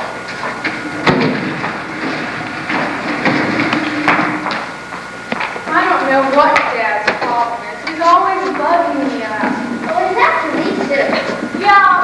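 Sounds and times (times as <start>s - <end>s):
footsteps and knocks: 0.0s - 11.8s
faint steady hum: 0.0s - 12.0s.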